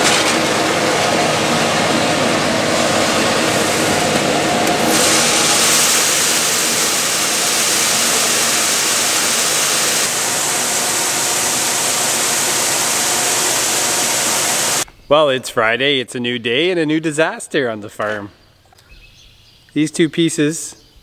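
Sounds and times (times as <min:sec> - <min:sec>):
engine hum: 0:00.0 - 0:14.8
seed pouring into tank: 0:04.7 - 0:14.8.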